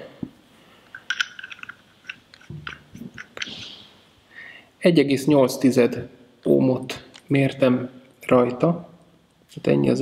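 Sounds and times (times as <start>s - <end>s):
atomizer clicks and handling: 0.9s - 3.6s
breath: 3.5s - 4.8s.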